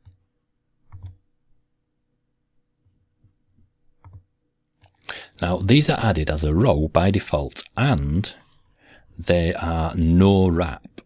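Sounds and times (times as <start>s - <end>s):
computer mouse clicks: 0.0s - 0.2s, 0.9s - 1.2s, 4.0s - 5.0s
faint steady hum: 0.0s - 11.0s.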